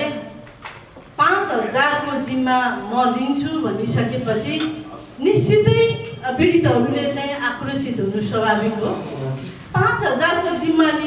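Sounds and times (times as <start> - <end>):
woman speaking into a microphone: 0.0 - 0.4, 1.2 - 11.0.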